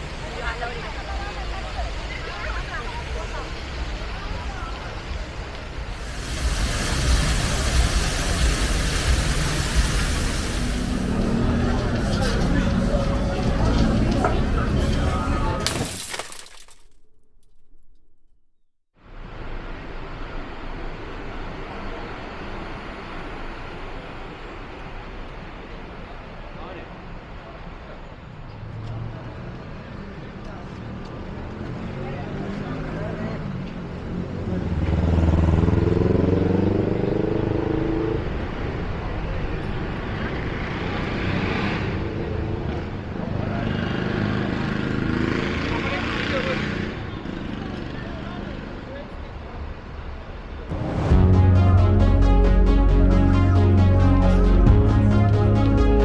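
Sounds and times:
people talking: 0:00.0 - 0:05.6, 0:11.2 - 0:15.7
busy street stall noise: 0:00.0 - 0:15.9, 0:19.0 - 0:56.0
glass shattering: 0:15.6 - 0:17.8
rising sound: 0:50.7 - 0:56.0.

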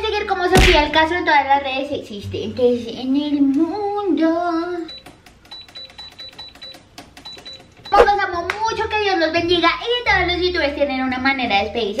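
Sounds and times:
woman speaking: 0:07.9 - 0:09.5.

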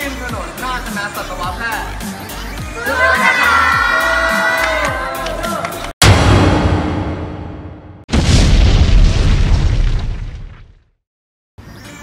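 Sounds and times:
explosion boom: 0:06.0 - 0:10.8.

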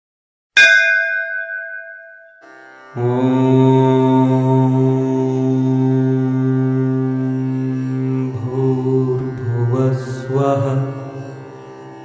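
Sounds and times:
brass temple bell ringing: 0:00.6 - 0:02.6.

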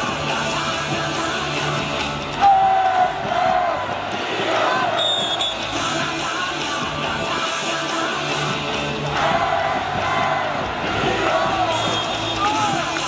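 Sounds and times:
cheer song over stadium speakers: 0:00.0 - 0:13.0
crowd singing and chanting: 0:00.0 - 0:13.0.

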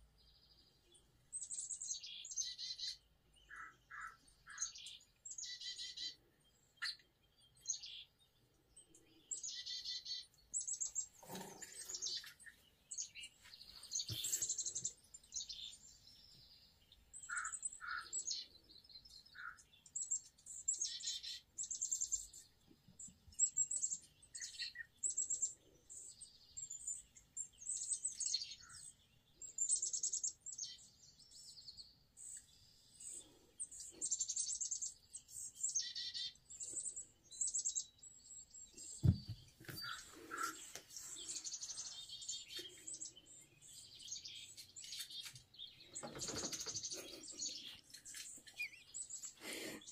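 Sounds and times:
small birds chirping: 0:00.0 - 0:49.9.

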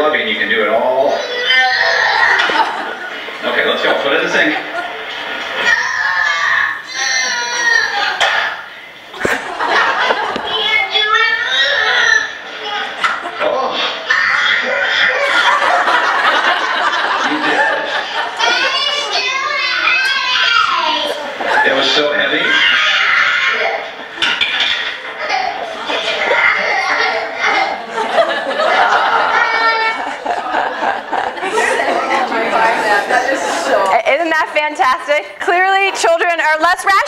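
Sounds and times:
small child talking: 0:01.2 - 0:02.3, 0:05.7 - 0:08.2, 0:10.4 - 0:13.0, 0:18.4 - 0:21.3
audience laughing: 0:02.0 - 0:05.7, 0:09.1 - 0:11.0, 0:11.6 - 0:19.4, 0:21.0 - 0:33.9.

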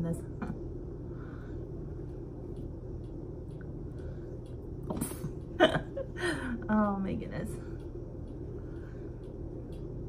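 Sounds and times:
woman laughing: 0:05.1 - 0:06.6.

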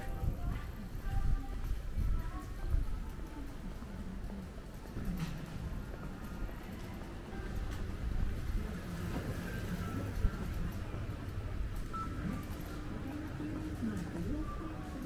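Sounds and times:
faint music: 0:00.0 - 0:15.0
low town hum: 0:00.0 - 0:15.0.

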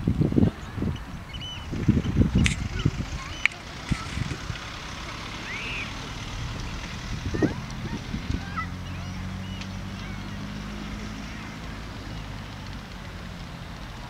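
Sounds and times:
low uneven rumble: 0:00.0 - 0:14.0
low motor hum: 0:00.5 - 0:14.0
high chirps: 0:01.2 - 0:12.4.

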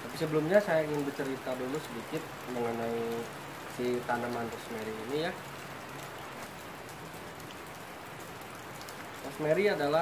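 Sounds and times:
faint ticks of raindrops: 0:00.0 - 0:10.0
steady rain falling: 0:00.0 - 0:10.0.

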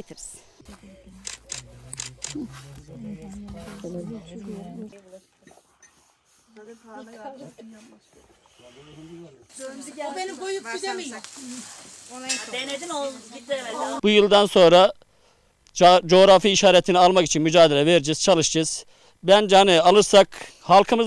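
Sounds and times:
woman talking: 0:00.0 - 0:01.4, 0:02.9 - 0:05.1, 0:06.6 - 0:08.0, 0:09.6 - 0:14.0
soft hiss: 0:04.6 - 0:16.1.

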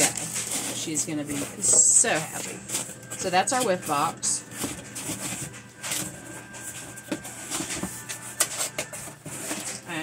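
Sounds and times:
packaging rustling: 0:00.0 - 0:10.0.

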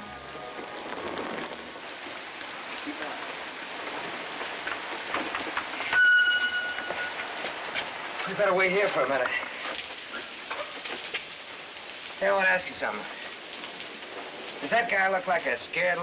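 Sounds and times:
heavy rain on a street: 0:00.0 - 0:16.0
high steady horn-like tone: 0:05.9 - 0:07.2.

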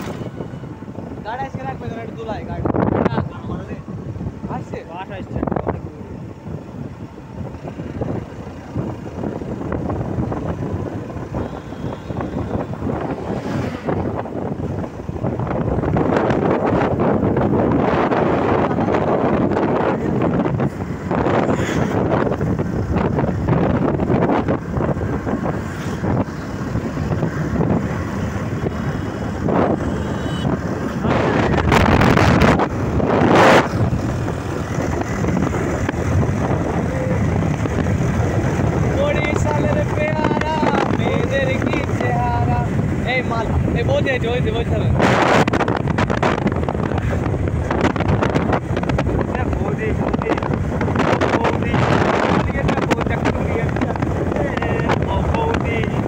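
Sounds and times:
road noise: 0:00.0 - 0:56.0
wind buffeting microphone: 0:00.0 - 0:56.0
motorcycle engine: 0:06.1 - 0:44.2.

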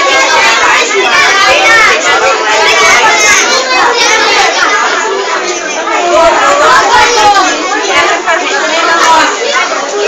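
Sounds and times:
chatter of many voices: 0:00.0 - 0:10.0.

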